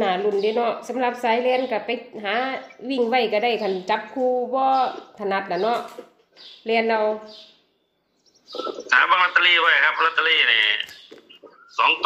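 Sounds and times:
person talking: 0:08.9 - 0:11.0, 0:11.8 - 0:12.0.

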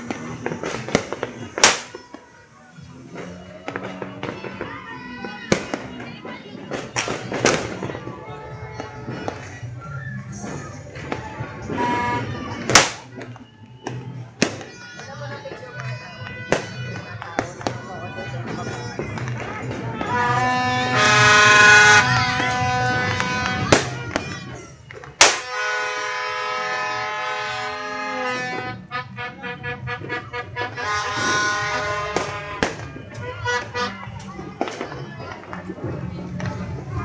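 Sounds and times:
fireworks banging: 0:00.0 - 0:37.0
voices: 0:00.0 - 0:37.0
background music: 0:06.6 - 0:37.0
horn long note: 0:11.7 - 0:12.4, 0:20.1 - 0:23.7, 0:25.5 - 0:32.6.

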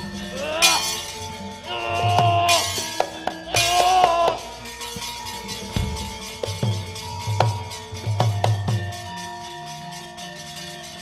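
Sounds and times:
gamelan music: 0:00.0 - 0:11.0.

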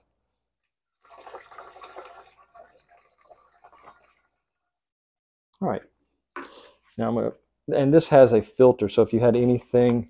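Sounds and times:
liquid pouring into plastic tank: 0:01.0 - 0:04.6.

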